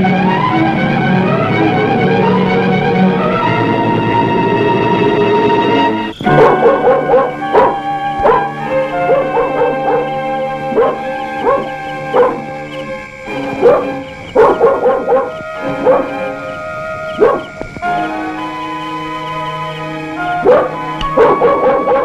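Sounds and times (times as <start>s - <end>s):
film score music: 0.0s - 22.0s
dog barking: 6.2s - 17.5s, 20.3s - 22.0s.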